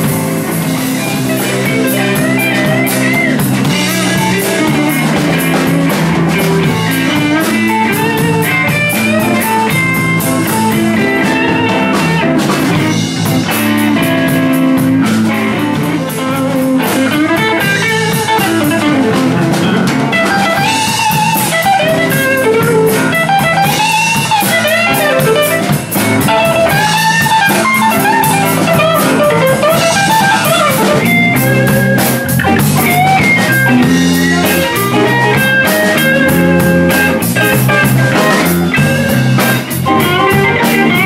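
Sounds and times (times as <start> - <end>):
bass guitar: 0.0 - 41.0
drum kit: 0.0 - 41.0
electric guitar lead: 0.0 - 41.0.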